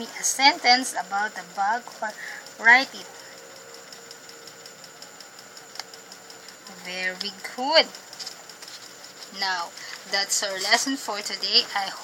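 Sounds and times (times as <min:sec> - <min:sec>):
faint ticking: 0:00.0 - 0:12.0
low background hum: 0:00.0 - 0:12.0.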